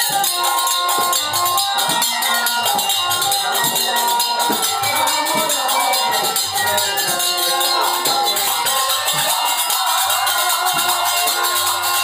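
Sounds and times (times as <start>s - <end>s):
hand cymbals clashing: 0.0s - 12.0s
held melody line: 0.0s - 12.0s.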